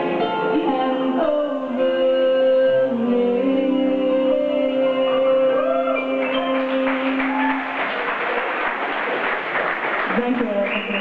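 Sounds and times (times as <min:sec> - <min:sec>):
audience clapping: 0:05.9 - 0:11.0.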